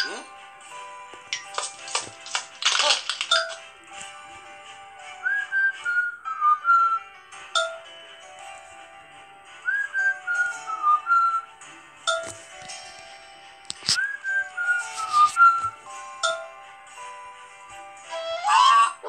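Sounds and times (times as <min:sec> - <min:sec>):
light instrumental music: 0:00.0 - 0:19.0
whistled tune: 0:05.1 - 0:07.8, 0:09.6 - 0:12.2, 0:13.8 - 0:16.4.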